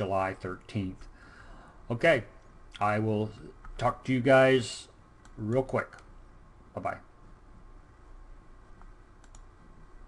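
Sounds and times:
faint low hum: 0.0s - 10.0s
computer mouse clicks: 5.2s - 6.1s, 8.8s - 9.6s.

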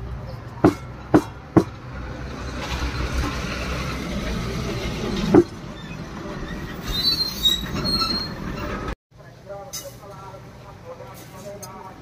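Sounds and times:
faint high squeaks: 5.7s - 8.9s.

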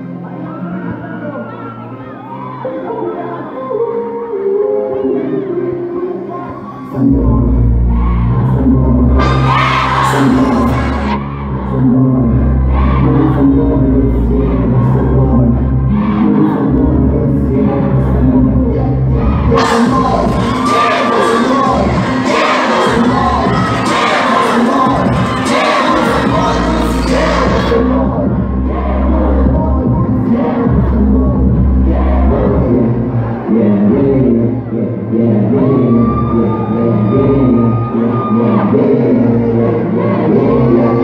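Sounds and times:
audience screaming and cheering: 0.0s - 17.1s, 19.1s - 41.0s
backing track over loudspeakers: 0.0s - 41.0s.

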